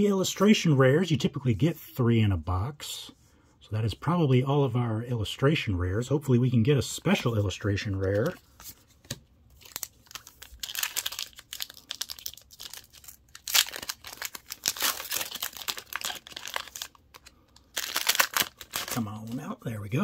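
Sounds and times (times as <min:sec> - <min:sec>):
foil wrapper crinkling: 0:09.5 - 0:19.5.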